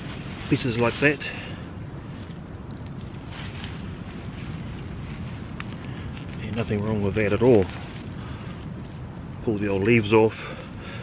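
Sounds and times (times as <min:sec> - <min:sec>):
faint rustle of leaves: 0:00.0 - 0:11.0
wind rumbling on microphone: 0:00.0 - 0:11.0.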